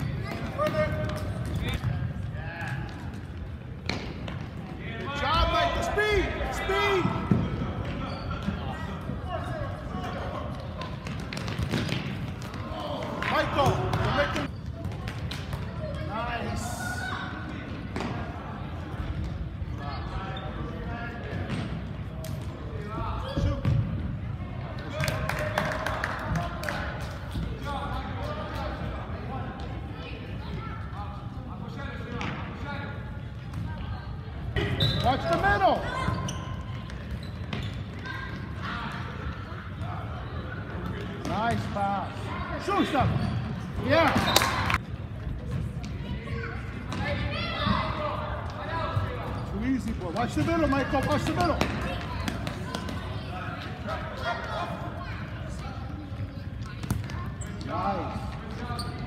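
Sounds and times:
ball kicked and bouncing on gym floor: 0.2s - 5.1s, 10.6s - 16.1s, 17.5s - 18.4s, 21.2s - 22.6s, 23.2s - 24.2s, 50.1s - 53.0s, 56.6s - 59.0s.

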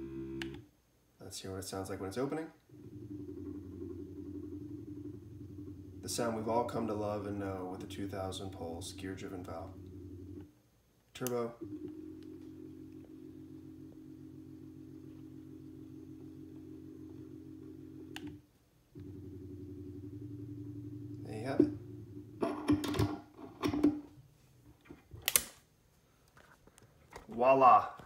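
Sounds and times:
stepper motor buzzing: 2.7s - 6.4s, 7.8s - 10.4s.

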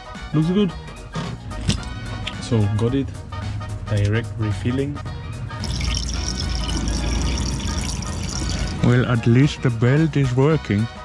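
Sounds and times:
background music: 0.0s - 11.0s
water pouring from a jug: 5.6s - 8.9s.

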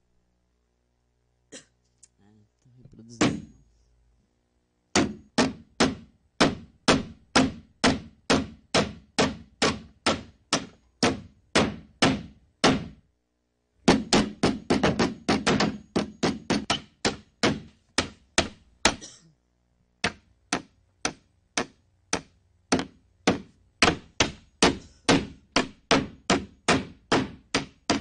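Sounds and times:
rapid sharp knocks: 4.9s - 13.1s, 13.8s - 19.1s, 20.0s - 28.0s.

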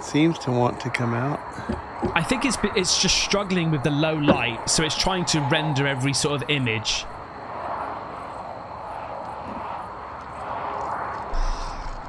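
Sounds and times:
outdoor night ambience: 0.0s - 12.0s
low bump: 4.2s - 4.9s.

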